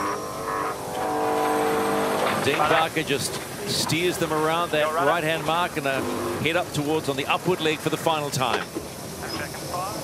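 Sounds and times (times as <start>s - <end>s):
mechanical whine: 0.0s - 3.1s.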